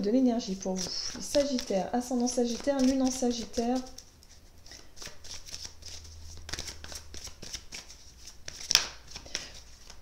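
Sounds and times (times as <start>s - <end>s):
cards being shuffled by hand: 0.5s - 10.0s.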